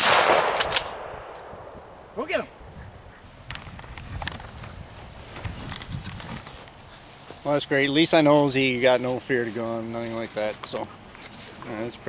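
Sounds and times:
gunshot with echo: 0.0s - 1.8s.

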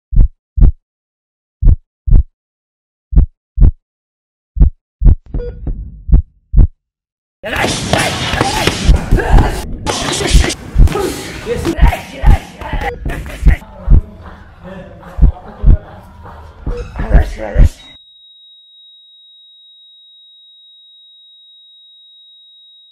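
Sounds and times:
slow heartbeat thumps: 0.1s - 0.8s, 1.6s - 2.3s, 3.1s - 3.8s, 4.6s - 6.8s, 13.0s - 14.1s.

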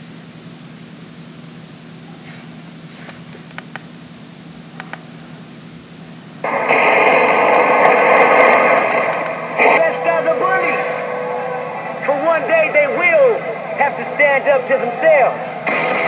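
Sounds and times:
low steady hum: 0.0s - 16.0s
radio static and tones: 6.4s - 16.0s
voice over radio: 6.5s - 16.0s.

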